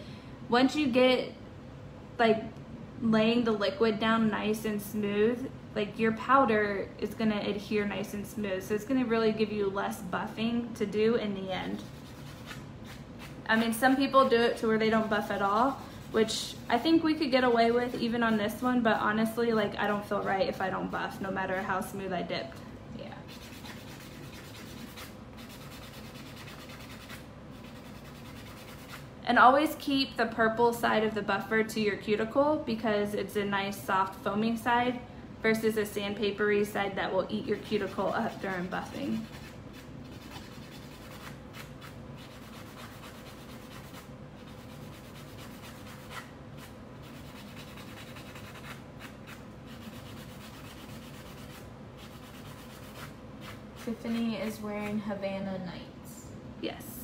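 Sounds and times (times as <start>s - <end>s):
nail buffer rubbing: 11.7s - 18.6s, 23.2s - 29.1s, 37.6s - 55.0s.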